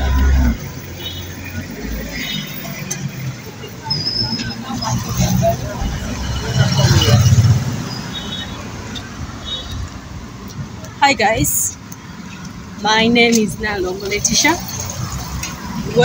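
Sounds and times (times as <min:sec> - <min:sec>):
motorcycles passing: 0:00.0 - 0:16.0
street traffic: 0:00.0 - 0:16.0.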